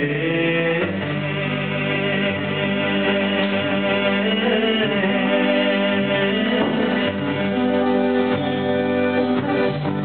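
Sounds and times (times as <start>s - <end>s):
guitar: 0.0s - 10.0s
held keyboard chords: 0.8s - 10.0s
hand-drum strokes: 2.4s - 10.0s.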